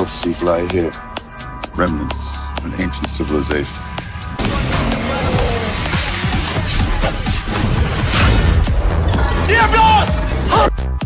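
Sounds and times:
film score: 0.0 - 11.0
low rumbling: 2.4 - 9.5.

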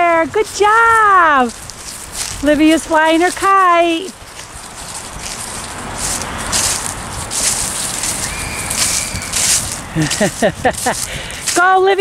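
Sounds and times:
rustling bursts: 0.0 - 12.0
wind buffeting microphone: 0.0 - 12.0.

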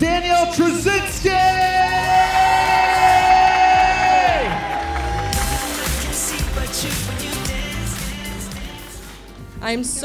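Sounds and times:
entrance music: 0.0 - 10.0
guests cheering: 1.2 - 7.3.

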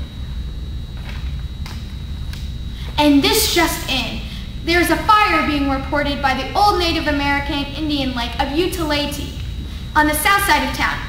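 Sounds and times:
faint high-pitched whine: 0.0 - 11.0
low room hum: 0.0 - 11.0.

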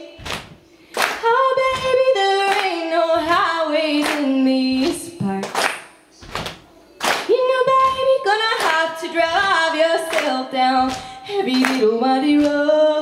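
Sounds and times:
audience stomping and patting: 0.2 - 12.7
woman singing wordless melody: 1.2 - 5.6, 7.3 - 13.0.

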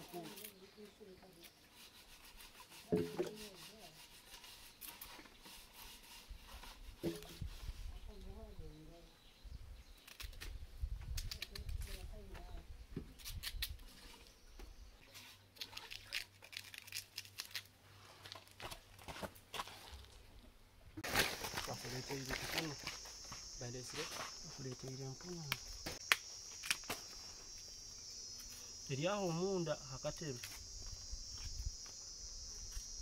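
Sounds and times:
high insect chirring: 21.0 - 33.0.

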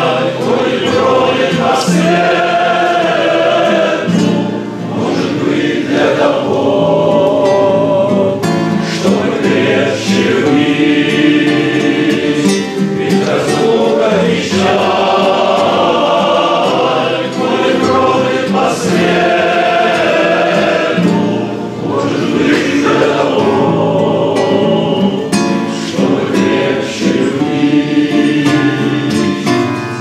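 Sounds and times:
acoustic guitar: 0.0 - 30.0
group of people singing: 0.0 - 30.0.

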